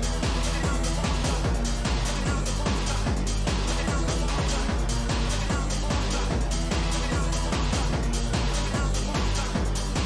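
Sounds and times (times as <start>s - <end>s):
electro dance music: 0.0s - 10.0s.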